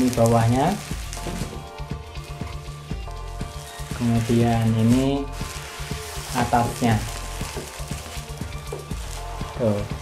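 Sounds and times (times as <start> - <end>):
background music: 0.0 - 10.0
bubble wrap crinkling: 0.0 - 10.0.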